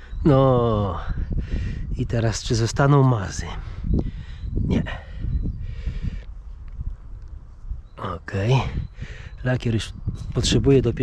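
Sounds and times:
wind buffeting the microphone: 0.0 - 11.0.

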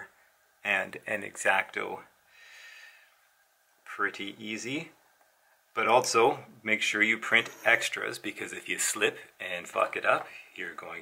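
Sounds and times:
person breathing softly: 2.2 - 3.3, 10.3 - 10.6.

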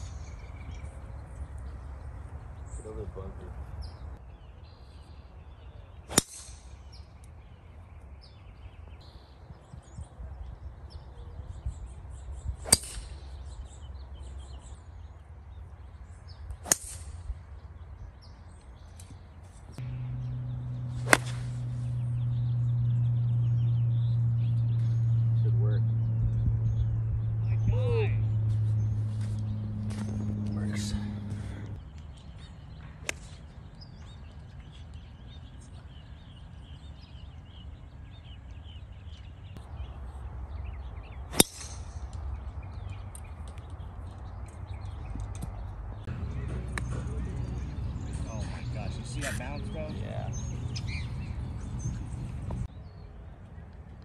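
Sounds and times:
golf clubs striking balls: 6.1 - 7.0, 12.6 - 13.4, 16.5 - 17.3, 19.8 - 23.5, 28.8 - 32.1, 41.3 - 50.7
low hum: 19.8 - 34.2.

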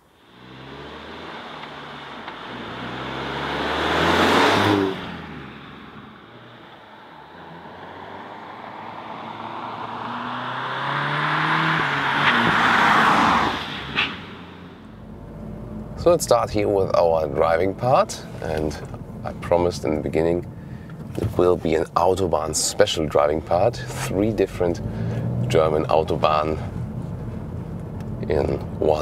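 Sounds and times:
car engine accelerating past: 0.2 - 15.9.

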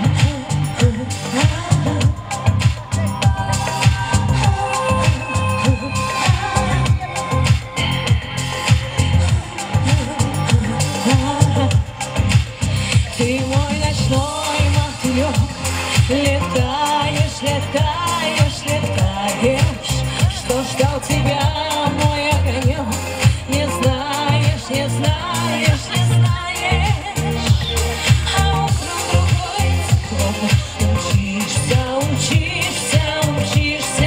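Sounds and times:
pop backing track with thumping beat: 0.0 - 34.0
woman singing into microphone: 0.0 - 34.0.

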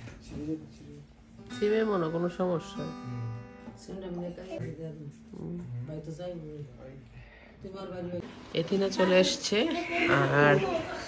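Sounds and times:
acoustic guitar plucked and strummed: 1.3 - 4.6.

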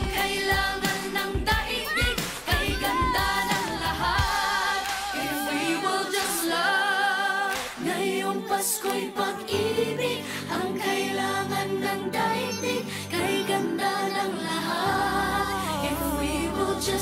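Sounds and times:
pop song with sung vocals: 0.0 - 17.0.

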